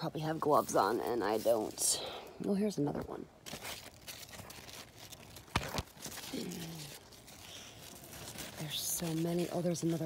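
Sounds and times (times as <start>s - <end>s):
leaves and vines rustling: 0.0s - 10.0s.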